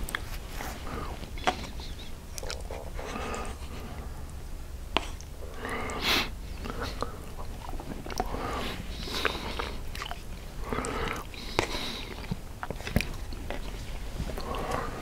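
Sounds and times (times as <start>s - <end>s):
man chewing food: 0.0s - 15.0s.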